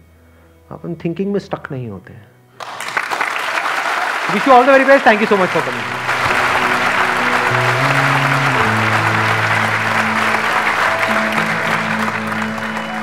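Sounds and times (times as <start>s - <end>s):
audience applauding: 2.6s - 13.0s
music of held low notes: 5.6s - 13.0s.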